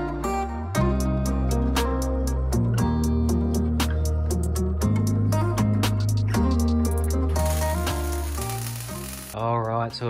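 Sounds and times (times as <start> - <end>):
background guitar music: 0.0 - 10.0
welding arc sizzling: 7.3 - 9.4.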